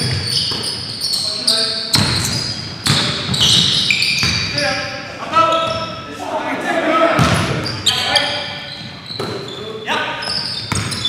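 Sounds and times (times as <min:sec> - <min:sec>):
sneaker squeaks on floor: 0:00.0 - 0:04.7, 0:05.4 - 0:06.1, 0:07.2 - 0:11.0
players calling out: 0:00.0 - 0:11.0.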